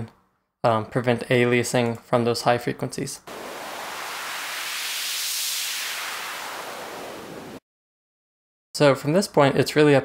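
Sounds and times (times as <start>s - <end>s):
synthesized white noise hiss: 3.3s - 7.6s.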